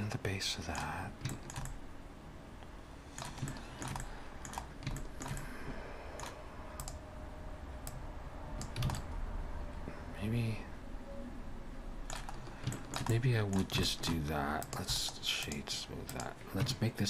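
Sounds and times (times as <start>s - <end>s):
keyboard and mouse clicking: 0.7s - 1.8s, 3.1s - 5.5s, 6.2s - 7.0s, 7.8s - 9.2s, 12.0s - 16.8s.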